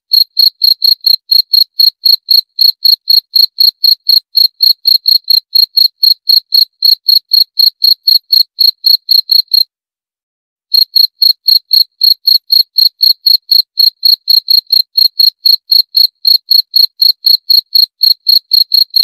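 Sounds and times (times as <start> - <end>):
cricket chirping: 0.1 - 9.6, 10.8 - 19.0.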